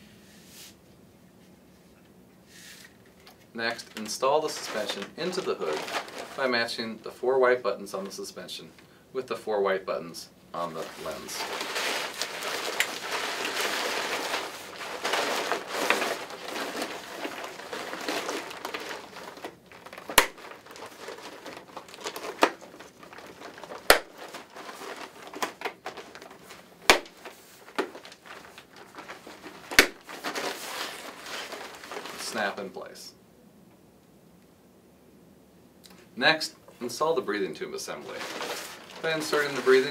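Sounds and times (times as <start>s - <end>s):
fabric crinkling and rustling: 3.0s - 7.0s, 10.6s - 33.0s, 37.8s - 39.9s.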